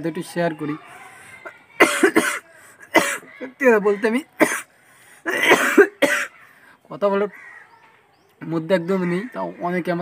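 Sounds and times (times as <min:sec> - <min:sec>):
person coughing: 0:01.8 - 0:03.3, 0:04.4 - 0:04.7, 0:05.3 - 0:06.3.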